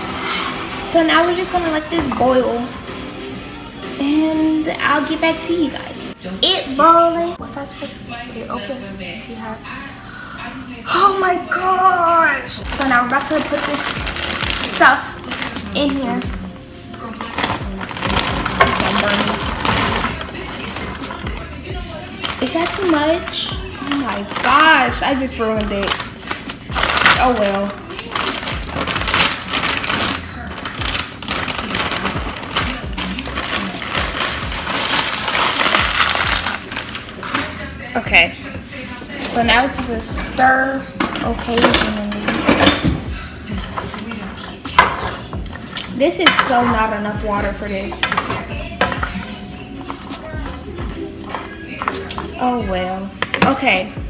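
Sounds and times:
background music: 0.0 - 54.0
frozen pieces rattling into skillet: 12.6 - 16.3, 17.0 - 21.5, 22.2 - 37.6, 43.6 - 47.0
plastic bag crinkling: 12.6 - 37.9.

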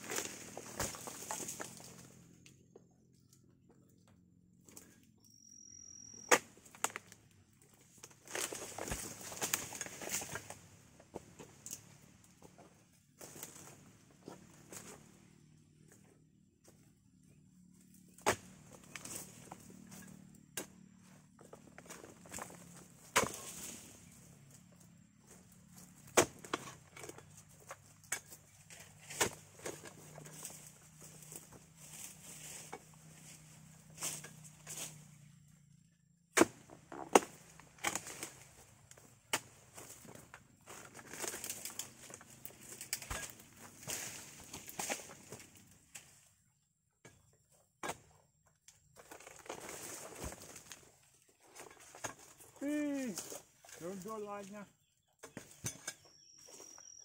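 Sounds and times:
fronds rustling: 0.0 - 2.2, 6.6 - 15.4, 21.0 - 35.4, 36.5 - 46.4, 49.1 - 54.7
chisel striking palm stalks: 18.2 - 20.8, 21.5 - 23.8, 26.0 - 30.6, 36.3 - 38.5, 41.0 - 45.4.

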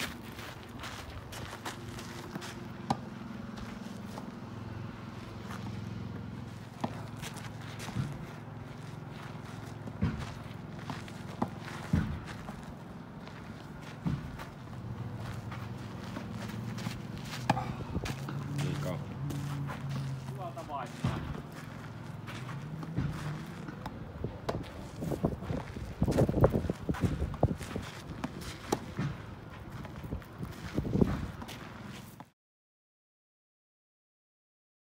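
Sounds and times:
steady low hum: 0.0 - 32.2
ball bouncing on gravel: 6.5 - 31.7
tennis ball hit by rackets: 6.7 - 8.3, 9.6 - 12.6, 16.0 - 19.4, 20.9 - 25.4, 26.1 - 29.3.

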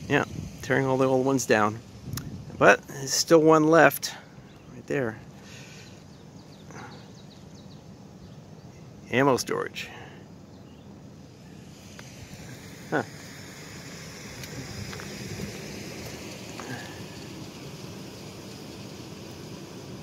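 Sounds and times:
faint even hiss: 8.6 - 20.0.

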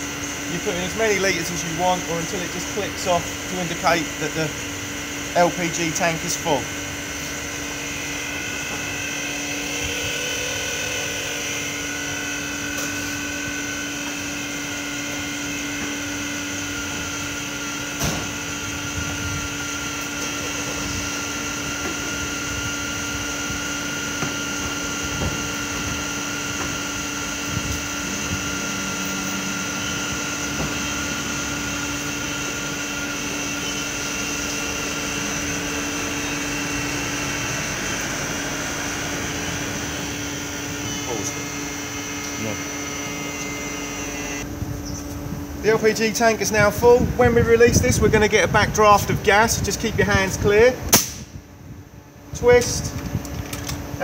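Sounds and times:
gas pump humming: 0.0 - 54.0
sharp click: 50.9 - 51.3.

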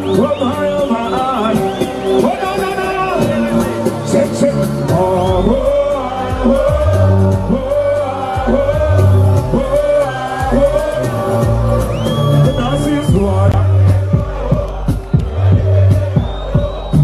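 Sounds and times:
amplified backing track with bass: 0.0 - 17.0
person singing: 4.9 - 17.0.

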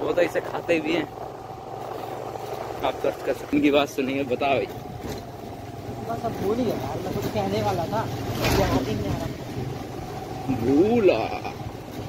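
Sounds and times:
motorcycle engine humming: 0.0 - 12.0.

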